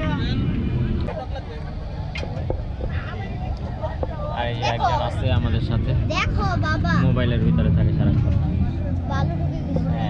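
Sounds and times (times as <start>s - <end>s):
low rumble: 0.0s - 10.0s
voices chattering: 0.0s - 10.0s.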